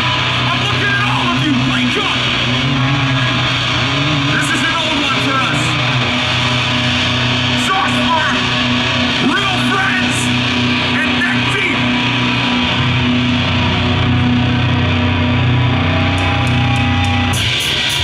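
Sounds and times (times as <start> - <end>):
bass: 0.0 - 18.0
distorted electric guitars: 0.0 - 18.0
drums: 0.0 - 18.0.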